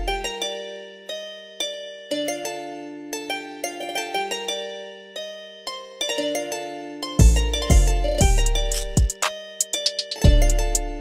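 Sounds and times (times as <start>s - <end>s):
plucked string arpeggio: 0.0s - 11.0s.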